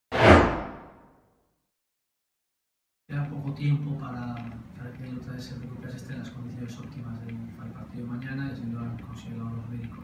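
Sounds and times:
whoosh sound effect: 0:00.1 - 0:01.0.

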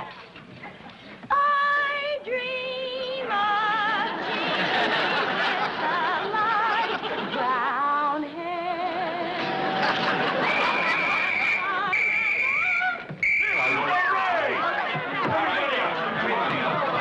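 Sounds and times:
voices: 0:00.0 - 0:17.0
woman singing in a warbling voice: 0:01.3 - 0:04.2, 0:05.8 - 0:09.4
police whistle blasts: 0:10.4 - 0:14.1.

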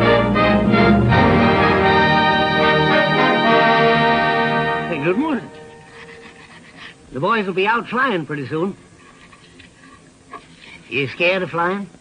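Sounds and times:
faint steady hum: 0:00.0 - 0:12.0
soundtrack hiss: 0:00.0 - 0:12.0.

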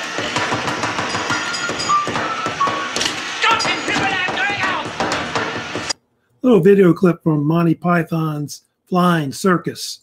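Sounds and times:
vacuum cleaner running: 0:00.0 - 0:06.0
knocks: 0:00.1 - 0:06.0
high-pitched tune: 0:01.1 - 0:04.6.

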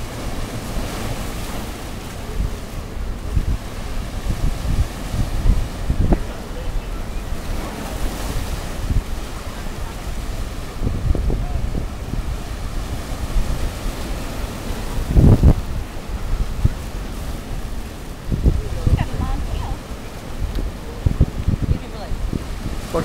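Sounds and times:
surf washing around rocks: 0:00.0 - 0:23.0
wind rumbling on microphone: 0:00.0 - 0:23.0.

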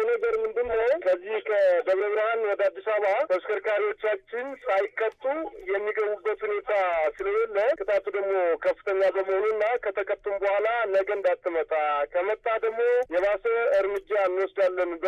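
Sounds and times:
person talking: 0:00.0 - 0:15.0.

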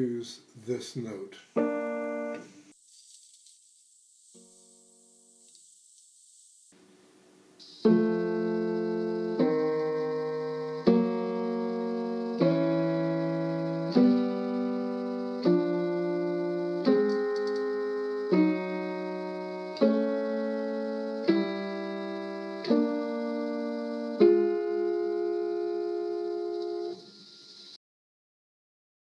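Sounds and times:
piano intervals ringing: 0:00.0 - 0:02.7, 0:06.8 - 0:27.8.

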